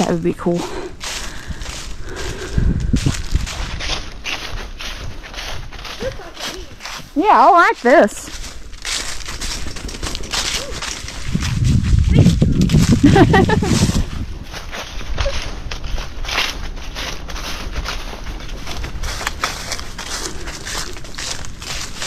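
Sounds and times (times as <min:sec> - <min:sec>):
footsteps on forest trail: 0:00.0 - 0:22.0
low rumble: 0:00.7 - 0:07.2, 0:08.3 - 0:21.9.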